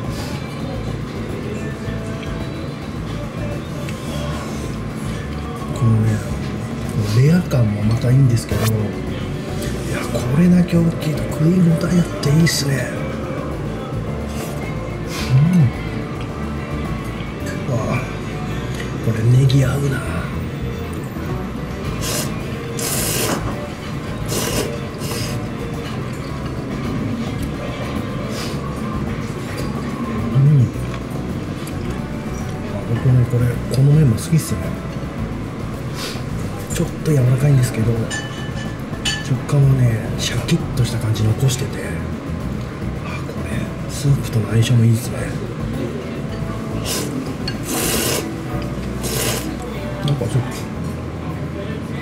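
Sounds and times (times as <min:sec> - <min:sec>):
person slurping noodles: 0:21.9 - 0:23.5, 0:24.2 - 0:25.5, 0:46.8 - 0:49.6.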